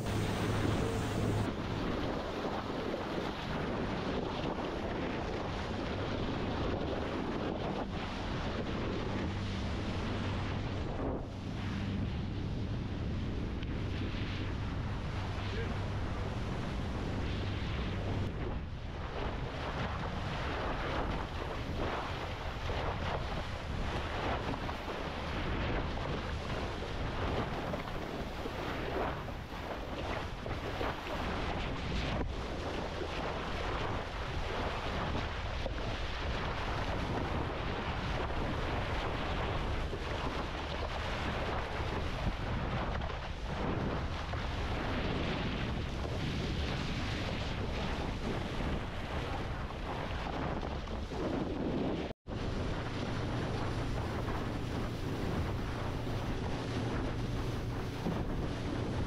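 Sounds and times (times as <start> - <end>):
sea water rushing and splashing: 0.0 - 59.0
wind buffeting microphone: 0.0 - 59.0.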